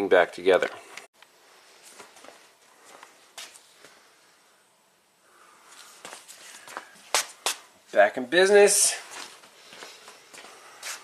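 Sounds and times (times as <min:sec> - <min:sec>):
faint clicks and scuffs: 0:00.9 - 0:04.0, 0:05.7 - 0:07.7, 0:09.0 - 0:11.0.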